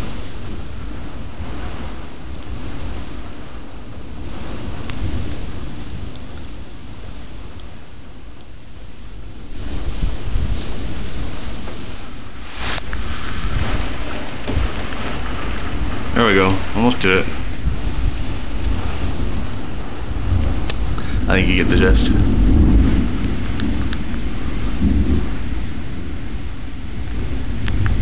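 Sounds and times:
gusting wind: 0:00.0 - 0:28.0
heavy rain downpour: 0:00.0 - 0:28.0
deep low rumble: 0:09.1 - 0:28.0.

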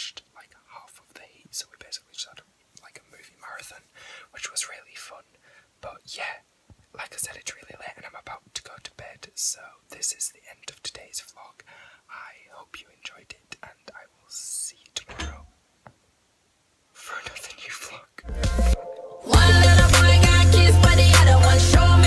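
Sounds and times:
man whispering: 0:00.0 - 0:15.5, 0:17.0 - 0:18.3.

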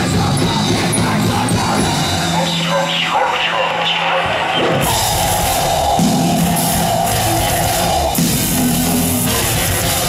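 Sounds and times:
live rock band playing: 0:00.0 - 0:03.1, 0:04.2 - 0:10.0
people shouting: 0:00.9 - 0:09.9.

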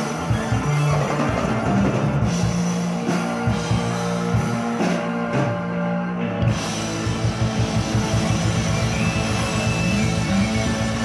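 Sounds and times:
drum kit beat: 0:00.0 - 0:11.0
live rock band playing: 0:00.0 - 0:11.0.

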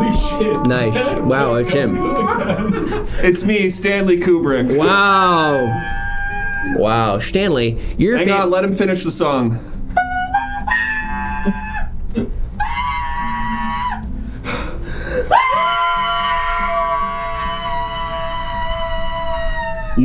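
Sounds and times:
man singing long notes: 0:00.0 - 0:02.5.

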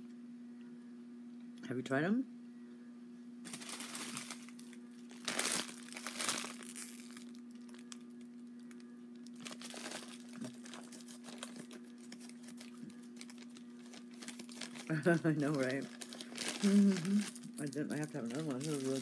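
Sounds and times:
faint steady hum: 0:00.0 - 0:19.0
candy wrapper crinkling: 0:03.5 - 0:19.0.

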